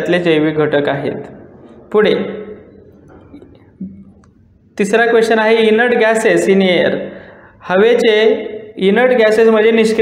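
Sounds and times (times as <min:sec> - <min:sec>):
man speaking: 0:00.0 - 0:04.0.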